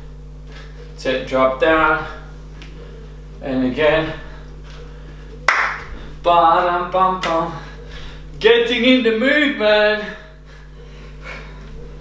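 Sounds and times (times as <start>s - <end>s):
steady low hum: 0.0s - 12.0s
sharp hand clap: 5.5s - 5.9s, 7.2s - 7.4s.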